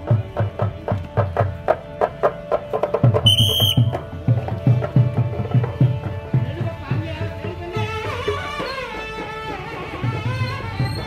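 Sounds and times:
drums beaten in quick rhythm: 0.0 - 11.0
shrill whistle-like tone: 3.2 - 4.0.

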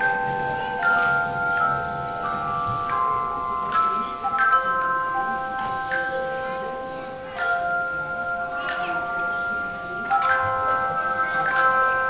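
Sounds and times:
bell-like percussion notes ringing: 0.0 - 12.0.

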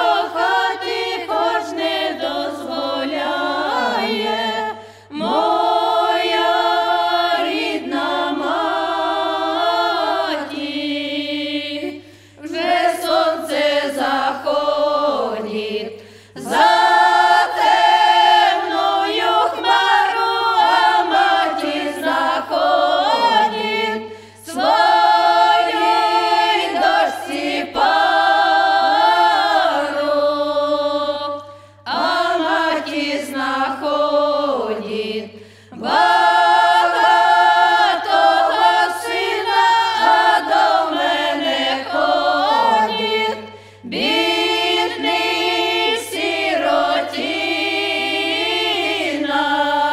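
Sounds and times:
women singing a cappella folk song: 0.0 - 49.9.

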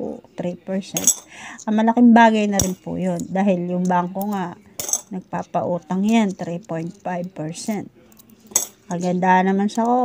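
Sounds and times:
coin clinking on tile: 1.0 - 1.3
coins picked up off tile floor: 1.0 - 1.3, 4.2 - 5.1, 8.2 - 9.0.

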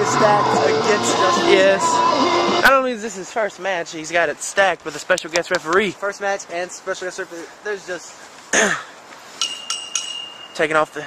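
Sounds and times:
cough-like vocal sound: 8.5 - 8.9
ring bell struck: 9.4 - 10.7.

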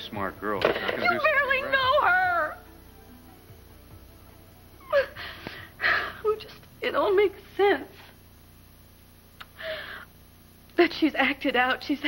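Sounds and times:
woman crying: 4.8 - 6.4.

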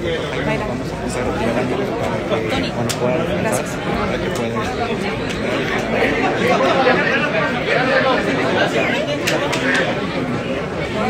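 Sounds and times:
men chattering: 0.0 - 11.0.

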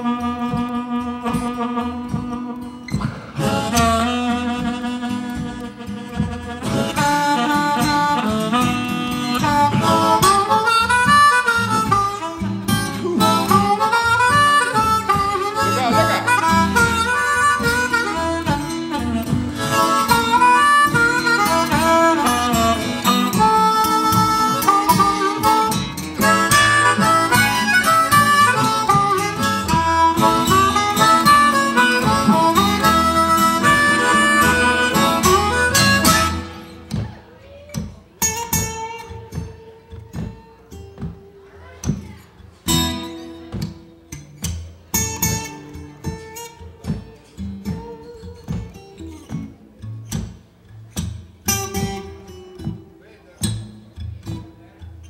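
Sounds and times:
blues harmonica solo: 0.0 - 37.1
acoustic guitar: 0.0 - 55.0.

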